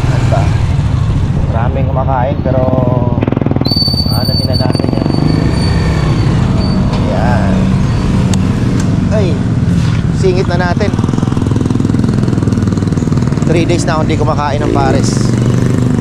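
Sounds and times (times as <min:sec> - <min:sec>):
motorcycle engine running: 0:00.0 - 0:16.0
voices: 0:01.4 - 0:03.2, 0:03.9 - 0:11.2, 0:13.3 - 0:15.6.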